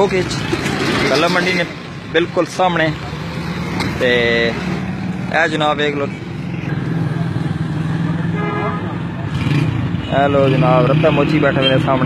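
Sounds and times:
passers-by talking: 0.0 - 9.6
horn toot: 8.3 - 9.6.

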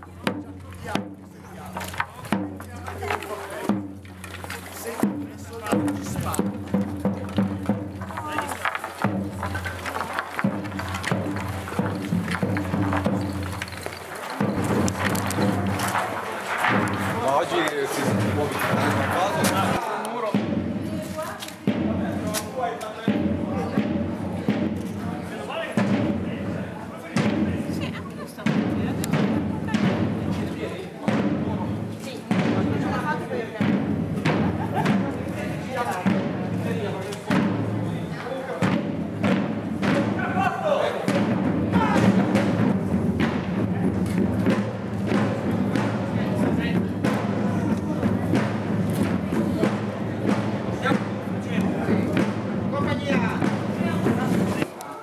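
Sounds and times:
marching drum beating: 0.0 - 22.4, 23.0 - 54.7.

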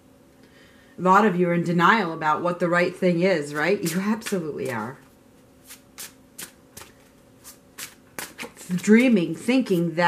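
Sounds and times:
cards being shuffled: 5.6 - 9.9.

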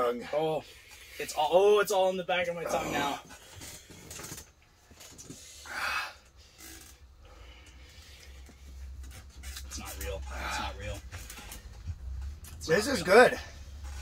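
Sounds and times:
man breathing hard: 5.3 - 6.6, 7.2 - 8.9.

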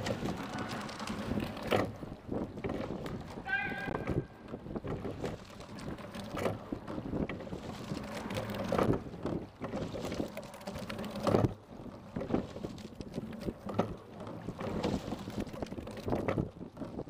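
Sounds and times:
water along hull: 0.0 - 17.0
wind on microphone: 0.0 - 17.0.

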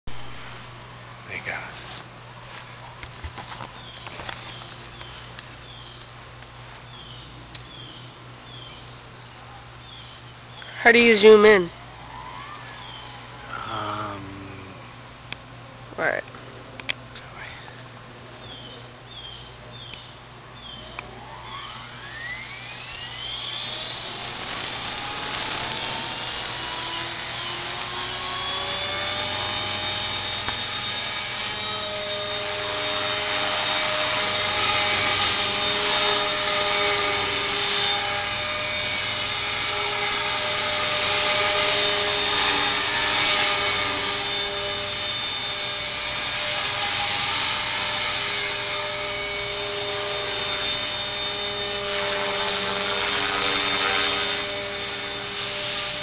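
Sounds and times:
helicopter rotor noise: 1.3 - 1.8, 10.7 - 14.7, 20.8 - 56.0
rc helicopter motor whine: 3.0 - 6.2, 9.8 - 14.7, 18.4 - 56.0.

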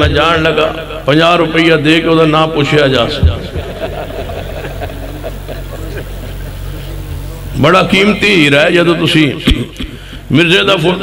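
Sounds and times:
steady low hum: 0.0 - 11.0
murmur of voices: 3.2 - 8.1.

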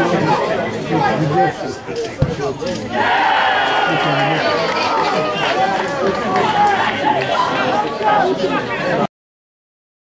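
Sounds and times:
crowd chattering and calling out: 0.0 - 9.1.

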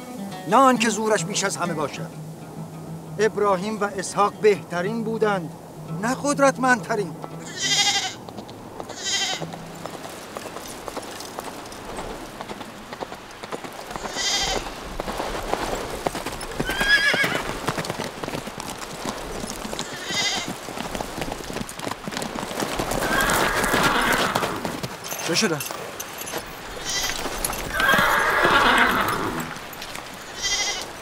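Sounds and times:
horse hoofbeats on hard ground: 0.0 - 31.0
sheep bleating: 7.2 - 8.2, 8.9 - 9.7, 14.0 - 14.7, 19.8 - 20.5, 26.7 - 29.5, 30.2 - 31.0.

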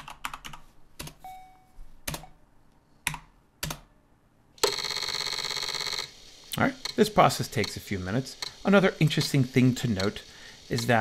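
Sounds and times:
computer keyboard keystrokes: 0.0 - 1.2.

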